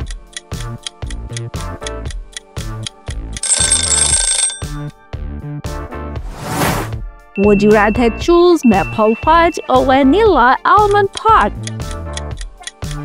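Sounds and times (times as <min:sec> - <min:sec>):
upbeat music with ticking beat: 0:00.0 - 0:05.9, 0:07.3 - 0:13.0
bell-like ringing: 0:07.4 - 0:10.0.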